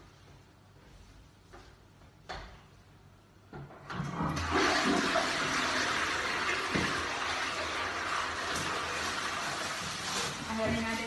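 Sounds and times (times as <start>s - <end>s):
toilet flushing: 3.8s - 10.8s.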